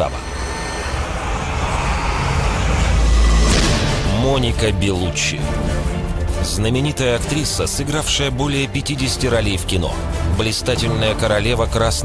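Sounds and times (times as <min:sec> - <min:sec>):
whoosh riser effect: 0:00.0 - 0:04.7
low musical drone: 0:00.0 - 0:12.0
deep boom: 0:01.0 - 0:04.8.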